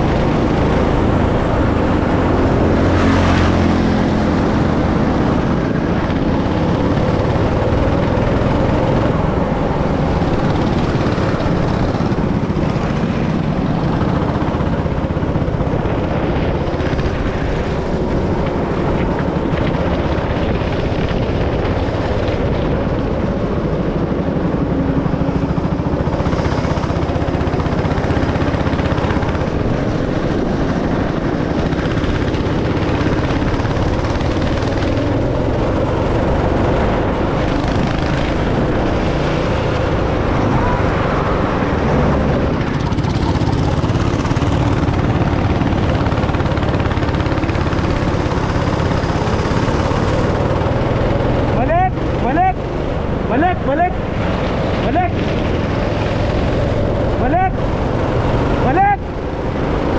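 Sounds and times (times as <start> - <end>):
go-kart engine running hard: 0.0 - 59.9.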